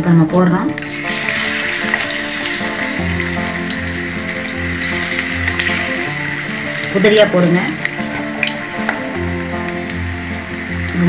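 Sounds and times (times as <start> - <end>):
background music: 0.0 - 11.0
deep-frying sizzle and bubbling: 0.7 - 11.0.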